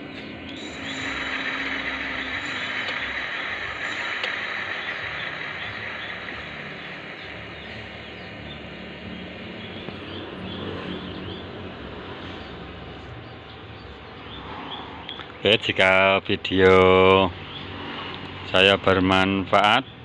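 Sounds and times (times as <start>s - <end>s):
electric hub motor whirring: 0.0s - 10.1s.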